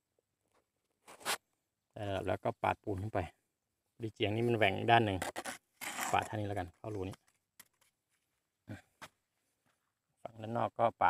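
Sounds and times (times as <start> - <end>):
steel trowel scraping mortar: 5.2 - 7.0.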